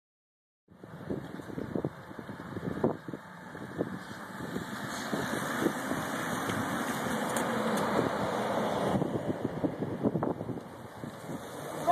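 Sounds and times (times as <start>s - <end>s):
bicycle tyre and drivetrain whir: 0.7s - 11.9s
car engine: 0.7s - 11.9s.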